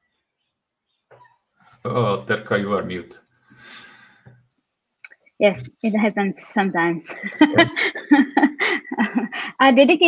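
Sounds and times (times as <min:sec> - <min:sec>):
man speaking: 0:01.9 - 0:04.0.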